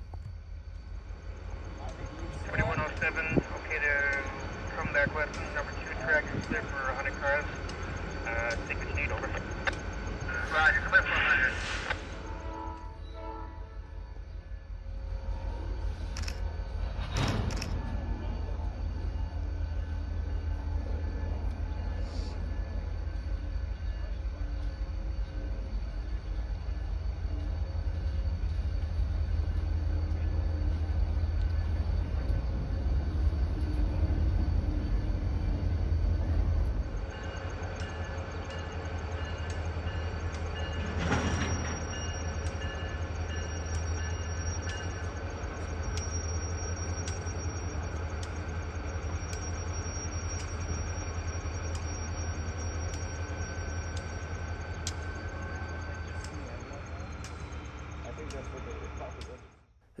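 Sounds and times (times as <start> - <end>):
train rolling on track: 0.0 - 60.0
thin steady high tone: 18.2 - 59.5.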